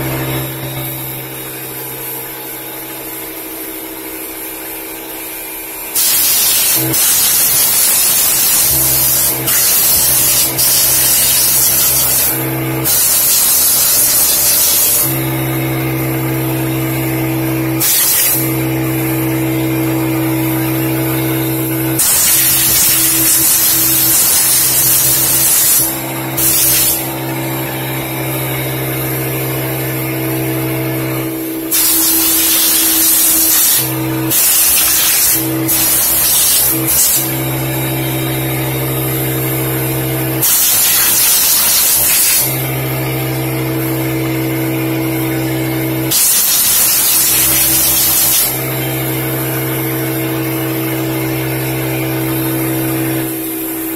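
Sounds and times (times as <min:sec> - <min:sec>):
motor hum: 0:00.0 - 0:53.9
hissing air blasts: 0:05.9 - 0:15.3, 0:17.7 - 0:27.2, 0:31.2 - 0:37.4, 0:40.4 - 0:42.6.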